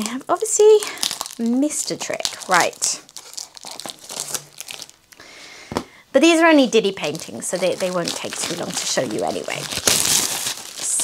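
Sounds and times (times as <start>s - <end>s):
shrink-wrap crinkling: 0.0s - 5.2s, 6.5s - 11.0s.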